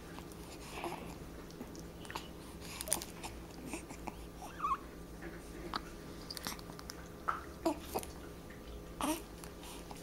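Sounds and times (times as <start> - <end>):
baby cooing: 3.7 - 4.9, 9.0 - 9.3.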